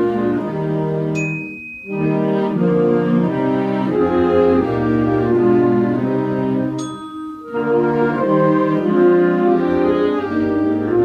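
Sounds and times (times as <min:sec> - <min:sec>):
concert band holding chords: 0:00.0 - 0:11.0
single high ding: 0:01.2 - 0:02.1, 0:06.8 - 0:07.6.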